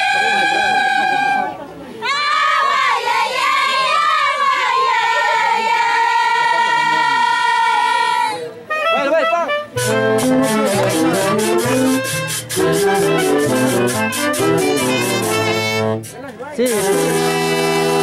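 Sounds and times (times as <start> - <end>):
festival band playing fast tune: 0.0 - 2.7, 8.4 - 18.0.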